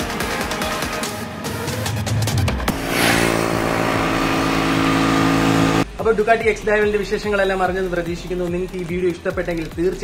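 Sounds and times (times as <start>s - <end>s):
background music with beat: 0.0s - 2.9s, 5.8s - 10.0s
motorcycle engine running: 2.7s - 5.8s.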